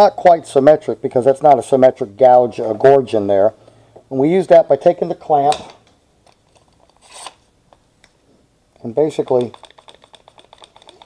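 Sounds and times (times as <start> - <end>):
bar clamp rubbing scrape: 6.9 - 7.4.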